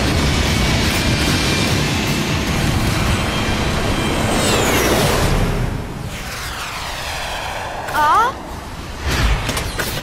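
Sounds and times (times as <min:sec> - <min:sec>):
music: 0:00.0 - 0:04.5
cartoon jet whoosh: 0:04.0 - 0:08.8.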